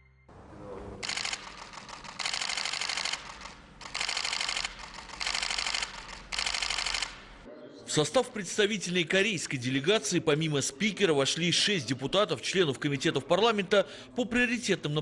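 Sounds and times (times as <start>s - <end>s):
camera shutter bursts: 1.0s - 7.5s.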